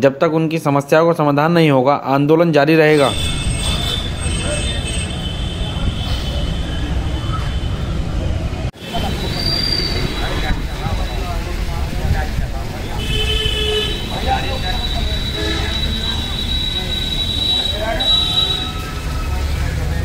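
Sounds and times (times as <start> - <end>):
people talking: 0.0 - 7.6, 8.8 - 20.0
high steady tones: 3.0 - 5.6.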